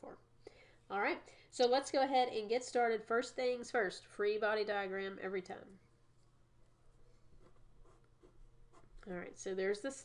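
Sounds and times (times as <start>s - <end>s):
pen scratching on paper: 7.4s - 9.0s.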